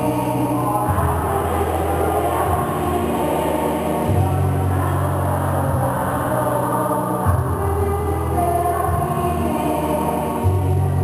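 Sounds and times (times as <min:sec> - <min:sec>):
choir singing a hymn: 0:00.0 - 0:11.0
sustained low notes: 0:00.0 - 0:11.0.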